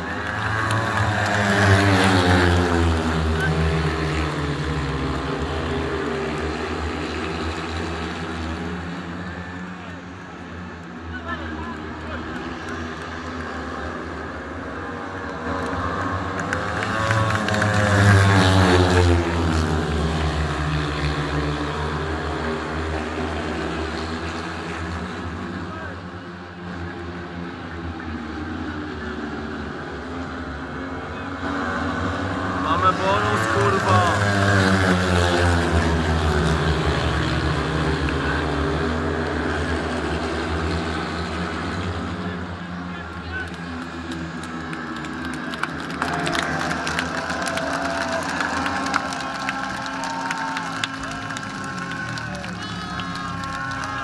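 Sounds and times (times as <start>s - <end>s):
motorcycle engines racing: 0.0s - 54.0s.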